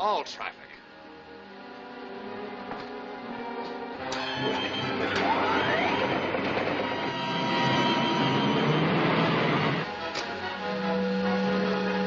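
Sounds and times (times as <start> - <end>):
machine clatter and hum: 4.1 - 10.3
rising whine: 4.1 - 12.0.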